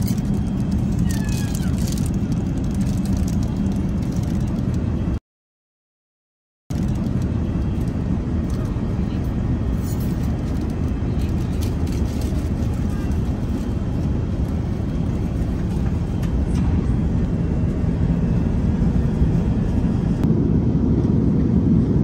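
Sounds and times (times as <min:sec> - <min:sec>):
airplane cabin rumble: 0:00.0 - 0:05.2, 0:06.7 - 0:22.0
murmur of passenger voices: 0:00.0 - 0:05.2, 0:06.8 - 0:20.3.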